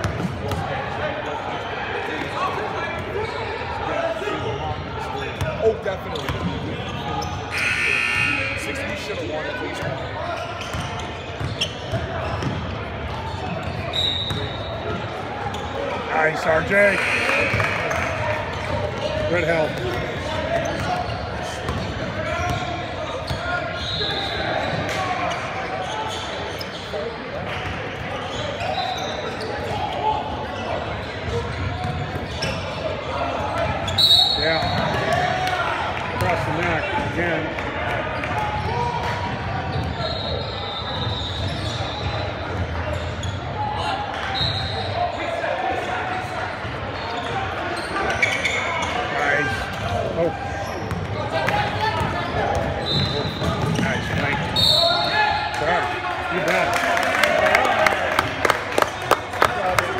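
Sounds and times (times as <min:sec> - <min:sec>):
overlapping chatter: 0:00.0 - 0:59.9.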